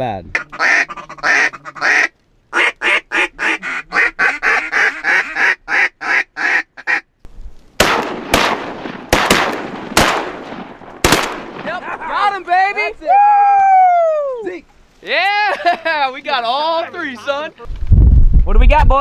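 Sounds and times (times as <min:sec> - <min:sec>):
duck call quacking: 0:00.3 - 0:07.1
shotgun shots: 0:07.8 - 0:11.7.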